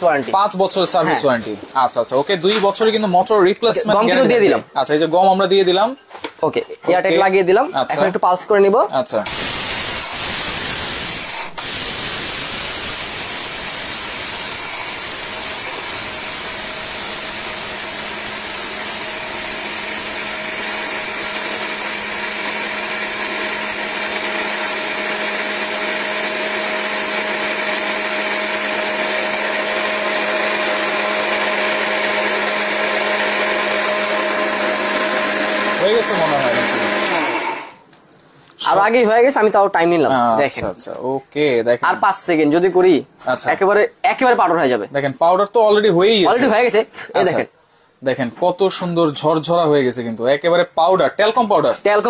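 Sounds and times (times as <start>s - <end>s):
mixer grinder motor whining: 9.2s - 37.9s
jar grinding dry powder: 9.3s - 37.8s.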